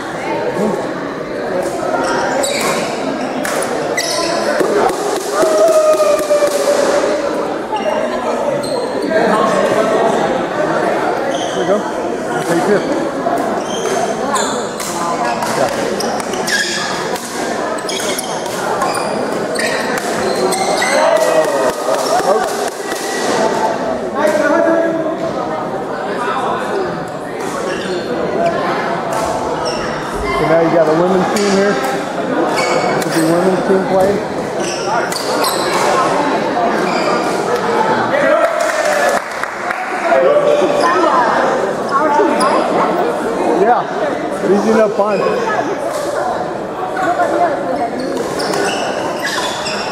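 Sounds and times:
echoing background chatter: 0.0s - 49.9s
voices in a hall: 0.0s - 49.9s
shoes squeaking on hard floor: 2.0s - 3.0s, 3.9s - 4.6s, 16.0s - 17.0s, 17.8s - 21.0s, 36.8s - 37.3s, 47.9s - 49.9s.

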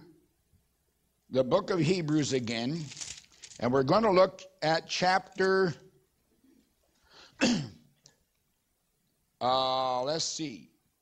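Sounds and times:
faint breath: 7.0s - 7.4s
man clearing throat: 7.4s - 7.9s.

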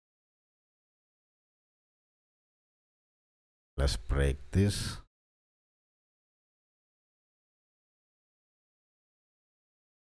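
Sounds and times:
speech: 3.8s - 5.1s.

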